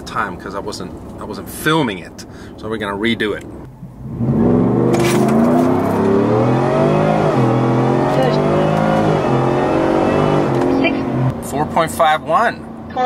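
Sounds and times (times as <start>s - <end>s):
pickup engine accelerating: 3.4s - 13.0s.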